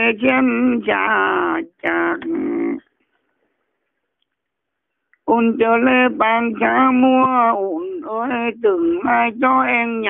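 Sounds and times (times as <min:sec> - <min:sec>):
person singing unaccompanied: 0:00.0 - 0:02.9, 0:05.2 - 0:10.0.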